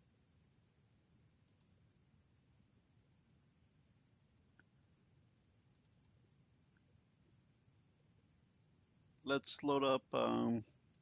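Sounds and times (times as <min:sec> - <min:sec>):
low steady hum: 0:00.0 - 0:11.0
computer mouse clicks: 0:01.4 - 0:01.8, 0:05.7 - 0:06.2.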